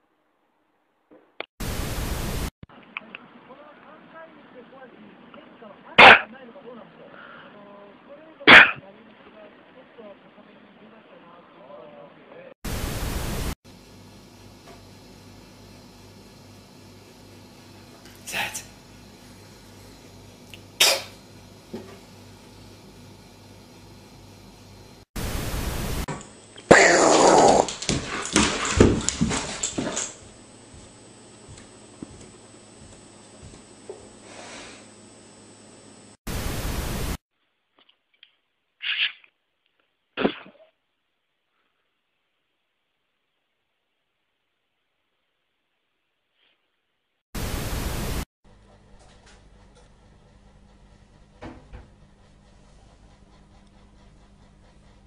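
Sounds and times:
loud static hiss: 1.6s - 2.5s, 12.7s - 13.6s, 25.0s - 27.7s, 33.6s - 37.2s, 47.4s - 48.3s
burst of hiss: 34.2s - 34.9s.

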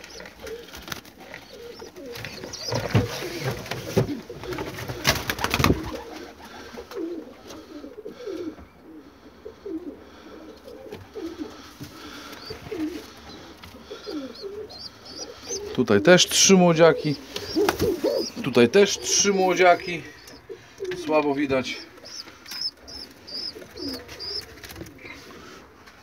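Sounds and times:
pigeons cooing: 0.0s - 25.9s.

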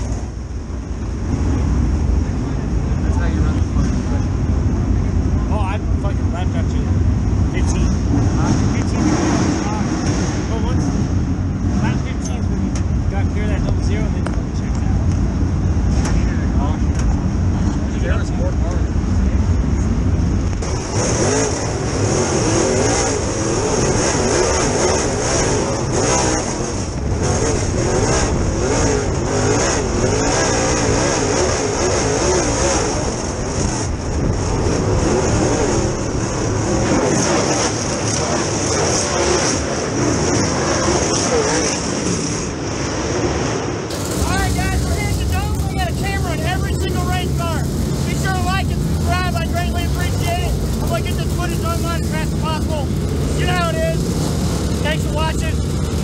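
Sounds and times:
race car engine idling: 43.9s - 56.0s.

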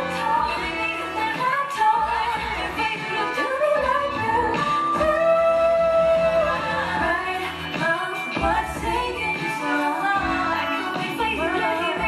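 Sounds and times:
instrumental backing: 0.0s - 12.0s
woman singing into microphone: 0.0s - 12.0s.

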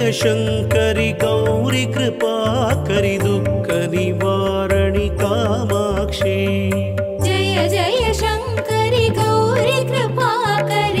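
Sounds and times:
instrumental accompaniment: 0.0s - 11.0s
women singing devotional melody: 7.2s - 11.0s.

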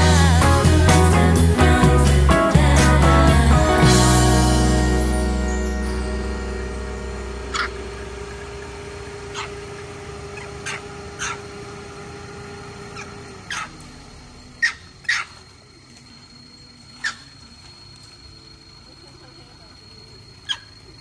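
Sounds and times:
background music: 0.0s - 8.2s
macaques squeaking: 9.3s - 11.5s, 12.9s - 13.8s, 14.6s - 15.5s, 16.9s - 17.5s, 20.3s - 21.0s.

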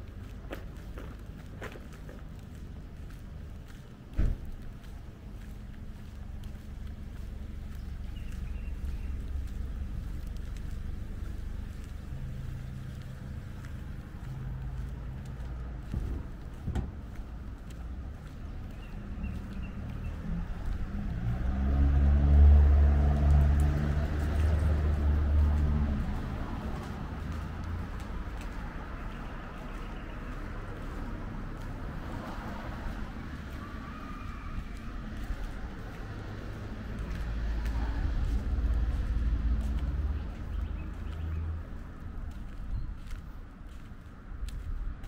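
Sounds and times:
footsteps on pavement: 0.0s - 45.0s
vehicle engine running: 4.6s - 28.6s.

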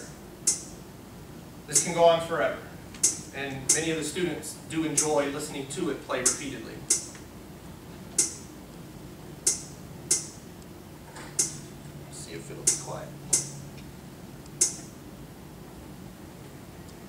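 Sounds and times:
sharp percussive clicks: 0.4s - 0.7s, 3.0s - 3.8s, 6.2s - 7.2s, 8.2s - 8.5s, 9.4s - 10.4s, 11.4s - 11.6s, 12.6s - 13.6s, 14.6s - 14.9s.

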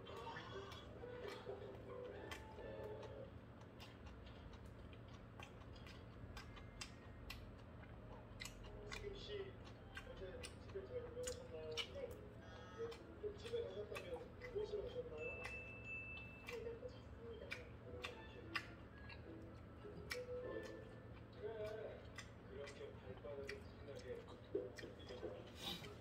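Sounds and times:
chewing and mouth smacks: 0.0s - 26.0s.

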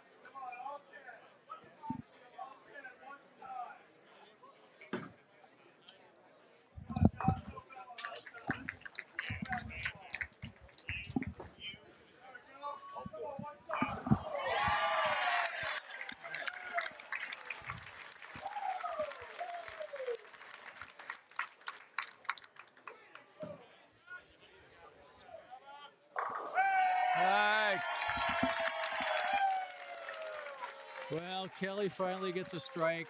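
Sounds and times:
scattered claps: 6.8s - 11.7s, 13.4s - 23.2s, 27.2s - 33.0s
crowd cheering and shouting: 13.8s - 20.2s, 26.5s - 33.0s.

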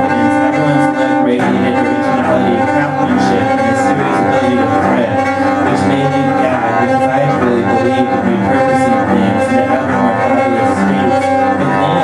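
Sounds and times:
bowed cello: 0.0s - 12.0s.

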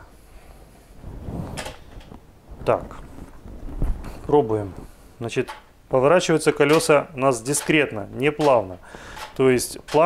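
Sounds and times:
low rustling: 0.3s - 5.3s.

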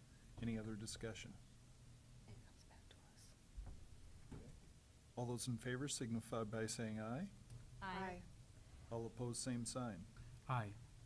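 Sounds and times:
faint whispering: 2.3s - 3.4s.

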